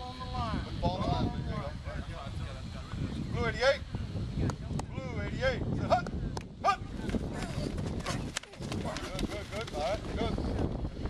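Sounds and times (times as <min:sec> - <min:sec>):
men calling out and talking: 0:00.0 - 0:10.7.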